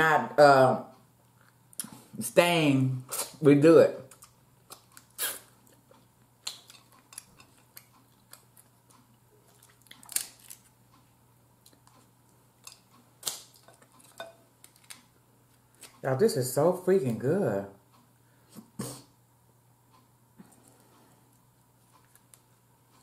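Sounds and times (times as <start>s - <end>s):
crab shells cracking: 4.1s - 5.8s, 6.4s - 8.8s, 9.5s - 10.8s, 12.6s - 15.1s.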